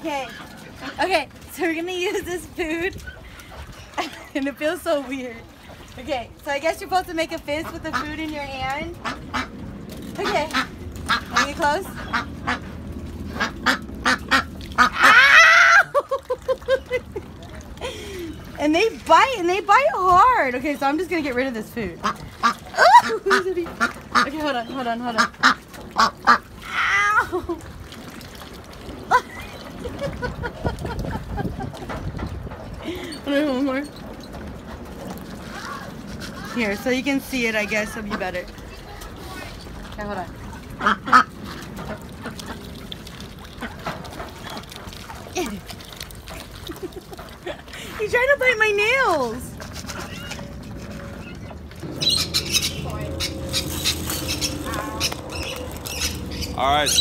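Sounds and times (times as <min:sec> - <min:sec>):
water moving: 0:00.0 - 0:57.0
ducks quacking: 0:07.5 - 0:09.6, 0:10.2 - 0:15.5, 0:21.9 - 0:26.6, 0:37.6 - 0:38.8, 0:40.1 - 0:44.5, 0:49.7 - 0:57.0.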